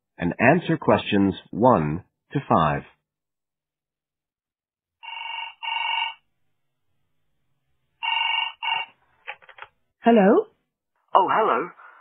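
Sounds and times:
telephone double ring: 5.0s - 6.2s, 8.0s - 8.9s.

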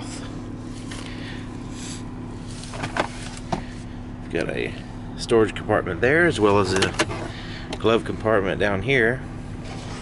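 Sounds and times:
low cabin hum: 0.0s - 10.0s.

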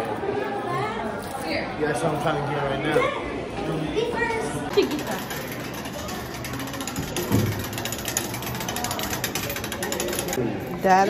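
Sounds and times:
hand-cranked gears clicking: 4.7s - 10.4s.

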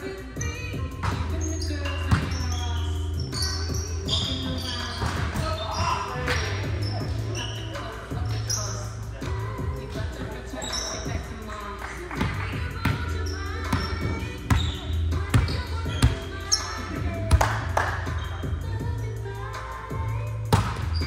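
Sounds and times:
background music: 0.0s - 21.0s
players' voices: 0.0s - 21.0s
sneaker squeaks: 0.4s - 9.0s, 10.2s - 11.6s, 12.2s - 17.2s, 18.0s - 18.6s, 20.5s - 21.0s
volleyball hits and bounces: 17.3s - 18.0s, 20.5s - 21.0s.

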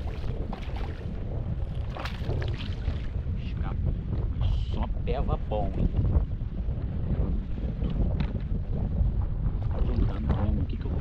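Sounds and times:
water slapping against hull: 0.0s - 4.4s, 5.5s - 11.0s
wind buffeting microphone: 0.0s - 11.0s.

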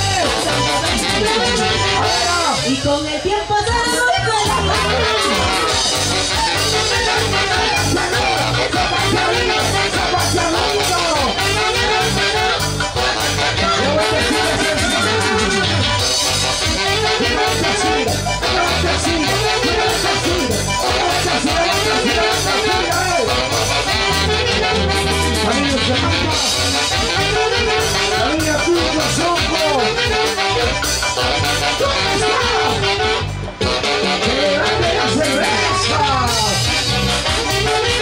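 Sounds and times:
saxophones playing melody: 0.0s - 2.9s, 3.7s - 38.0s
latin dance band: 0.0s - 38.0s
pulsing bass line: 0.0s - 38.0s.

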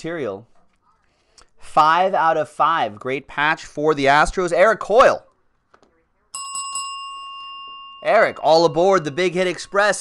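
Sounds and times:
small bell ringing: 6.3s - 10.0s.

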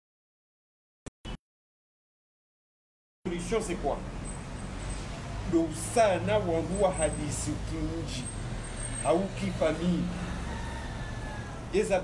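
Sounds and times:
man talking: 3.3s - 4.0s, 5.5s - 8.3s, 9.0s - 10.2s, 11.7s - 12.0s.

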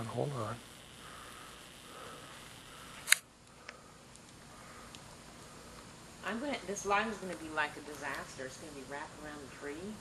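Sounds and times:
faint ticks: 0.9s - 5.1s
sharp click: 3.0s - 3.3s.

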